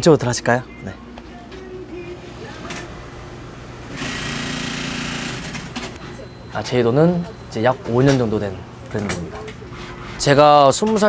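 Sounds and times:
factory machine motor hum: 1.5s - 10.2s.

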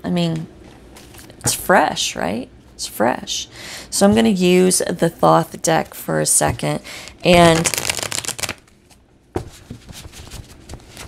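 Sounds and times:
cards shuffling: 7.3s - 8.7s.

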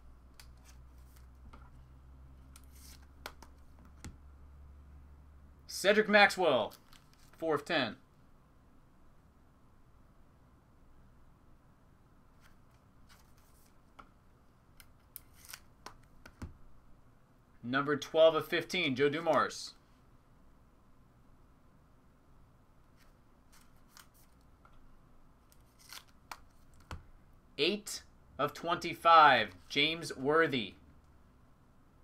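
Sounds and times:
cards clicking and scraping: 0.3s - 1.8s, 2.4s - 4.2s, 6.7s - 7.4s, 12.4s - 14.1s, 14.7s - 16.5s, 23.0s - 24.8s, 25.4s - 27.0s.

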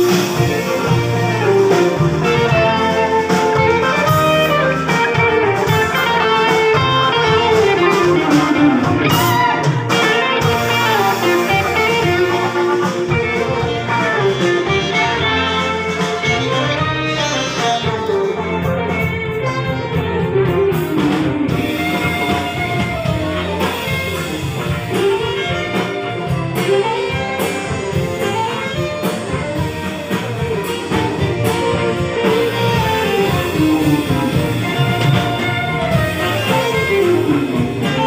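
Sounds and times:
bass: 0.0s - 38.0s
drums: 0.0s - 38.0s
electric guitar lead: 0.0s - 38.0s
keyboard: 0.0s - 38.0s.

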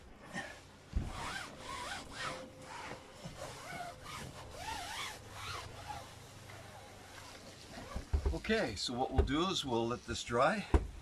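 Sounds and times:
damp cloth rubbing fabric: 0.4s - 8.6s.

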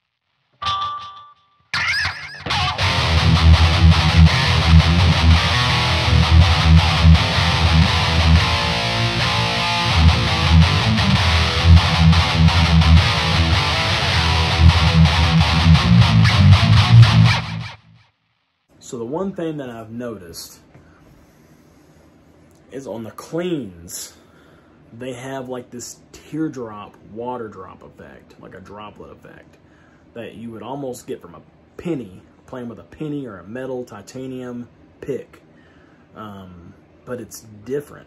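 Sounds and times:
distorted electric guitar riffing: 1.8s - 18.0s.

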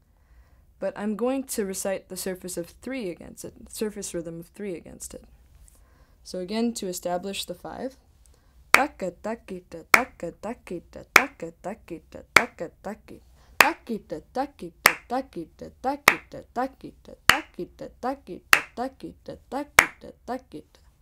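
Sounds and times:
woman reciting drum syllables: 0.8s - 5.3s, 6.2s - 8.0s, 8.7s - 20.8s
sharp hand clap: 11.2s - 11.4s, 14.8s - 15.1s, 16.1s - 16.3s, 17.3s - 17.5s, 18.5s - 18.8s.

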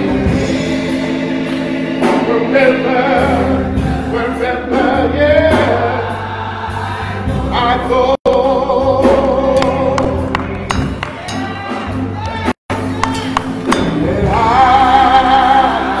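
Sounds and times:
man singing gospel song: 0.0s - 6.2s, 7.0s - 16.0s
congregation singing: 0.0s - 16.0s.

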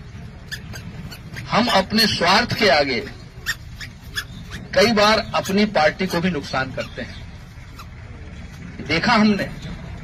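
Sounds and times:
man speaking through microphone: 1.5s - 3.2s, 4.7s - 7.2s, 8.8s - 9.8s.

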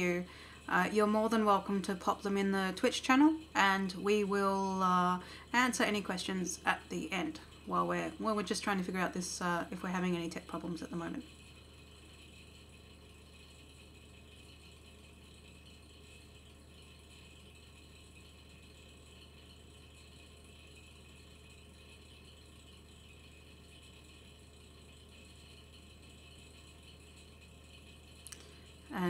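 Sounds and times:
computer fan humming: 0.0s - 29.0s.

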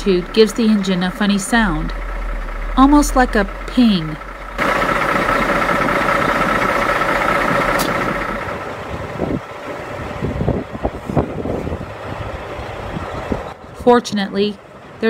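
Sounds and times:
engine knocking: 0.0s - 10.8s
high engine whine: 0.0s - 13.8s
truck diesel engine running: 0.0s - 15.0s.

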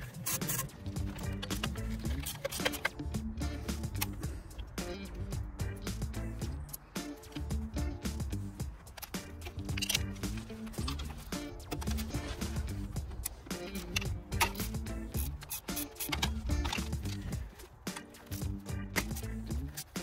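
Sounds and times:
background music with beat and bass: 0.0s - 20.0s.

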